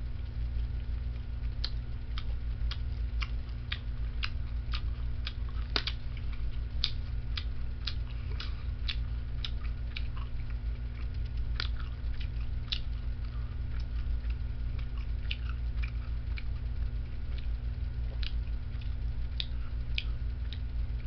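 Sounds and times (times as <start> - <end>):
steady low hum: 0.0 - 21.0
person chewing jerky: 0.6 - 21.0.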